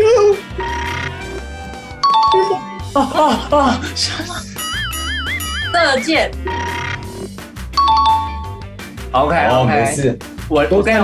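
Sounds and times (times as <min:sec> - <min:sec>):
background music: 0:00.0 - 0:11.0
two-note ding-dong chime: 0:02.0 - 0:02.8.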